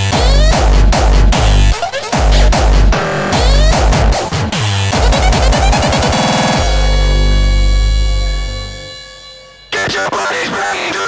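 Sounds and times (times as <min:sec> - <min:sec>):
electronic dance beat: 0:00.0 - 0:10.1
held low synth chord: 0:06.2 - 0:09.8.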